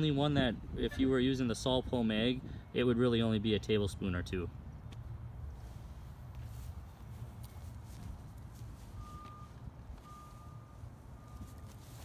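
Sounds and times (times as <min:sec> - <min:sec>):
reversing alarm beeping: 0:08.8 - 0:12.0.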